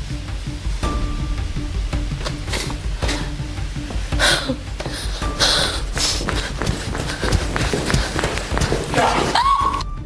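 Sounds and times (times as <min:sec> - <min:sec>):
running footsteps: 0:04.8 - 0:09.8.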